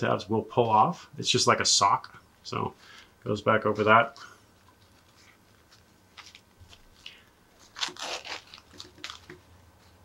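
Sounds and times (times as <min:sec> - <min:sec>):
fabric rustling and crinkling: 0:04.6 - 0:10.0.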